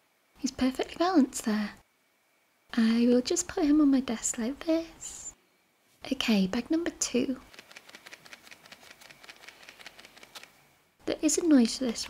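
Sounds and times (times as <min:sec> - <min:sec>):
toy bag shaken rattling: 0:07.4 - 0:10.5
wrapper crinkling: 0:07.5 - 0:10.6.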